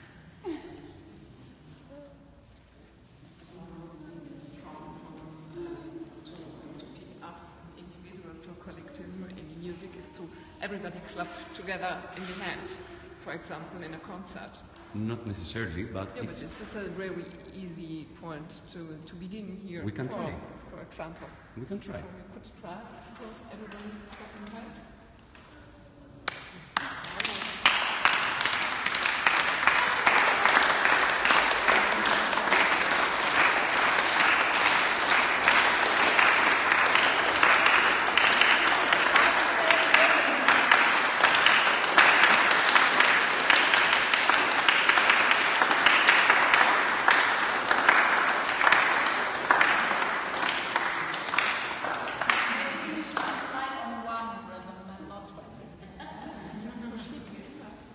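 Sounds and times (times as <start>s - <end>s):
group of people clapping: 26.2s - 53.6s.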